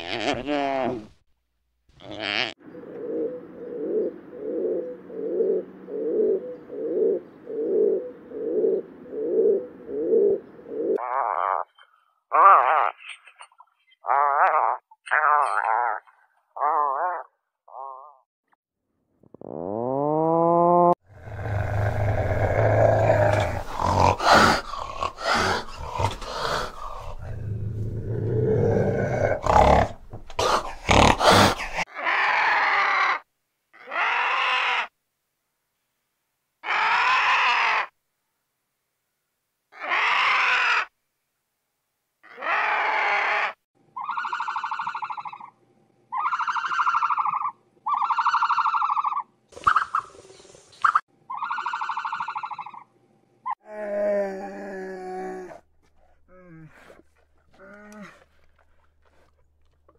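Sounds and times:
cat growling and hissing: 0.0 - 1.2, 19.4 - 33.2, 53.6 - 59.9
animal calls: 21.2 - 33.2, 33.8 - 34.9, 39.8 - 40.9, 42.2 - 53.6.

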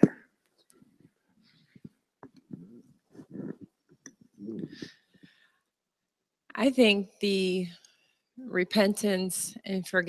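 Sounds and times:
microphone handling noise: 1.8 - 4.9.

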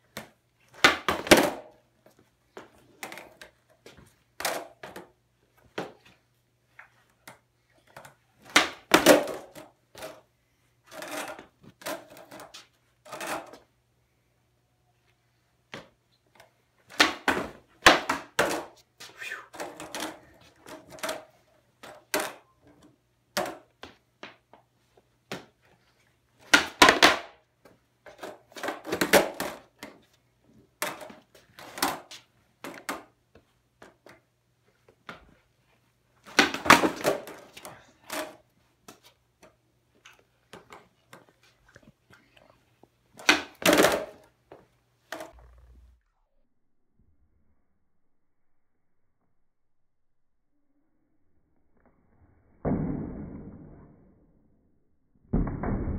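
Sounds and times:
skateboard clattering on concrete: 0.1 - 1.8, 4.4 - 6.1, 7.3 - 10.2, 10.9 - 13.7, 16.9 - 18.8, 19.6 - 22.4, 23.3 - 24.4, 26.4 - 27.4, 28.1 - 30.0, 30.8 - 33.2, 36.2 - 39.6, 43.2 - 45.4.

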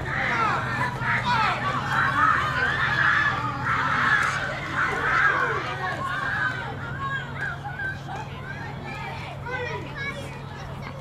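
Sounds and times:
spectators shouting: 0.0 - 9.9
children's high voices: 0.0 - 11.0.

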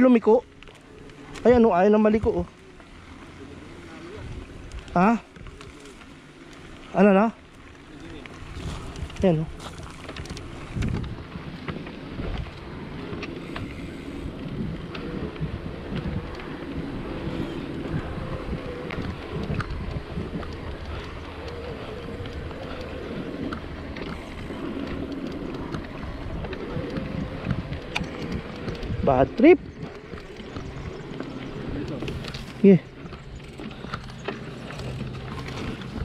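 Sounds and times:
bike rattles and clicks: 0.0 - 36.0
tyres rolling over dirt: 0.0 - 36.0
wind buffeting microphone: 0.0 - 36.0.

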